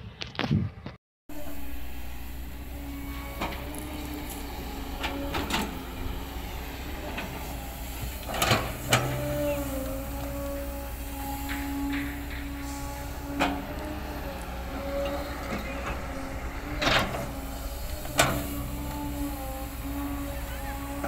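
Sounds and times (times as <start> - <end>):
diesel engine drone: 1.3 - 21.0
hydraulic whine: 1.3 - 21.0.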